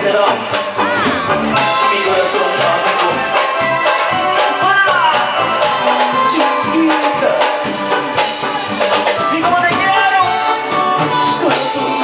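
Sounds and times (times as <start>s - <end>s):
live band music: 0.0s - 12.0s.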